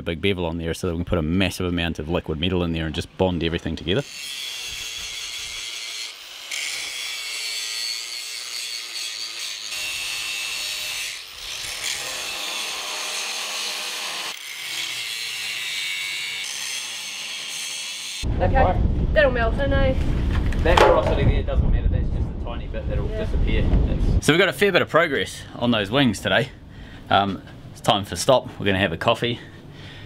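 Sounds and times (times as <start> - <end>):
angle grinder grinding steel: 3.8 - 18.2.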